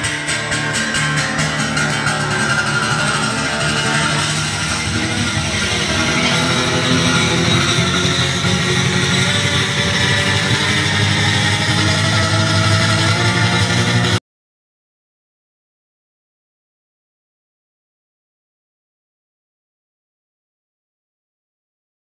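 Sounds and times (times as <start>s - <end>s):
acoustic guitar strummed hard: 0.0s - 14.2s.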